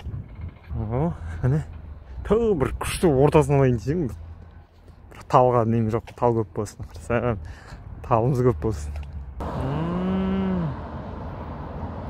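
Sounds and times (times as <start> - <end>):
long low call: 9.4 - 12.0.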